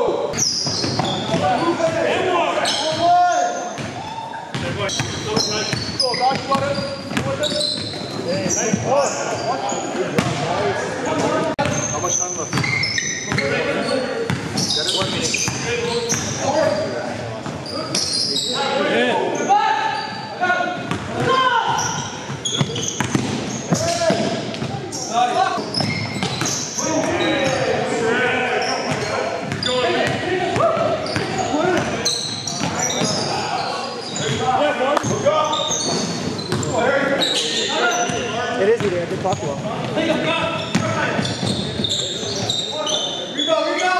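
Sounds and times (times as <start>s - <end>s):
basketball bouncing on gym floor: 0.4s - 1.6s, 3.8s - 8.8s, 14.3s - 16.4s, 20.8s - 24.8s.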